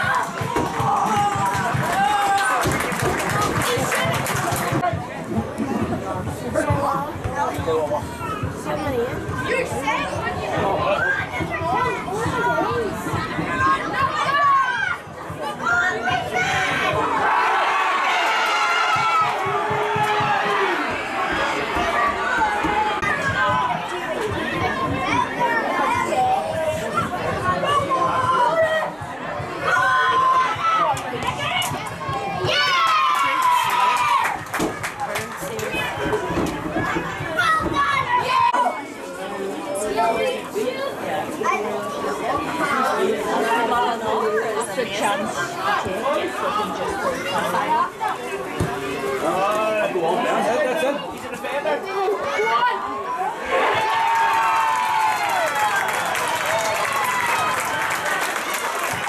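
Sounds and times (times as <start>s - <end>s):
voices shouting and calling out: 6.4s - 58.2s.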